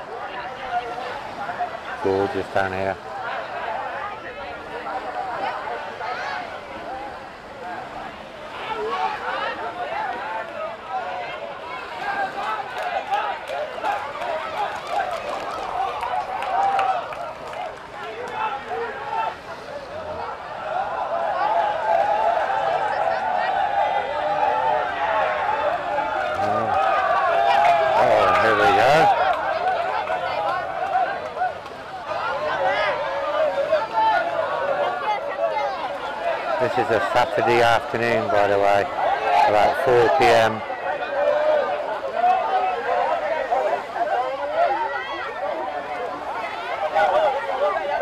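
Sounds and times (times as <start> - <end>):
crowd talking and calling out: 0.0 - 48.0.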